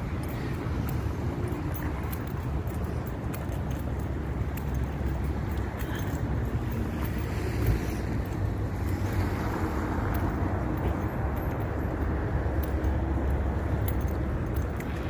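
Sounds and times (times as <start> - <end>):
distant road traffic: 0.0 - 15.0.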